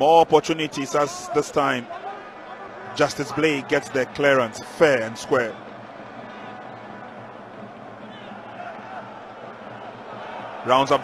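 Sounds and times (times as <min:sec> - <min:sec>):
stadium crowd hubbub: 0:00.0 - 0:11.0.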